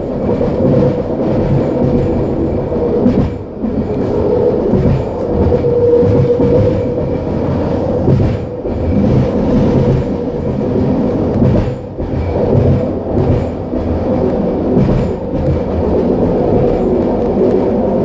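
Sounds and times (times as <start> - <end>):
train motor hum: 0.0 - 18.0
train wheel and rail rumble: 0.0 - 18.0.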